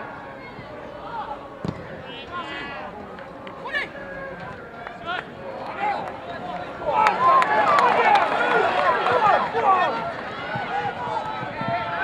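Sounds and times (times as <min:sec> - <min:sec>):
players shouting: 0:00.4 - 0:12.0.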